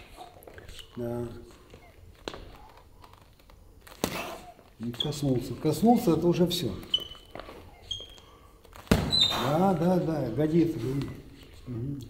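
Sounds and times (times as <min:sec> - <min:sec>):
boxing glove smacking a mitt: 0:08.8 - 0:09.2.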